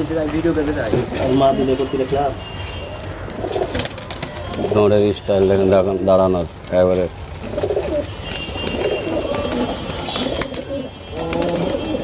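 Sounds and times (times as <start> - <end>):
pigeon cooing: 7.4 - 12.0.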